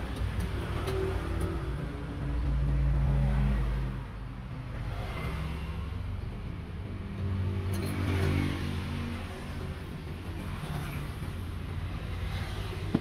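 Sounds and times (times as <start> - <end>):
passing vehicle engines: 0.0 - 13.0.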